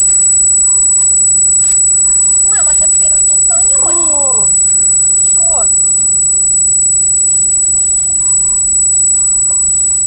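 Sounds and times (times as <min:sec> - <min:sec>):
high-pitched electronic whine: 0:00.0 - 0:10.0.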